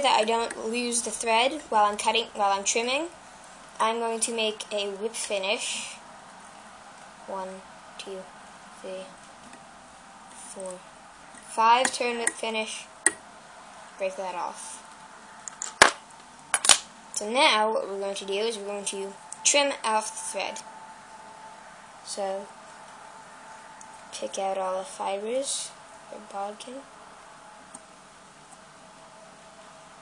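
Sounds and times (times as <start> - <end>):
low steady hiss: 0.0 - 30.0.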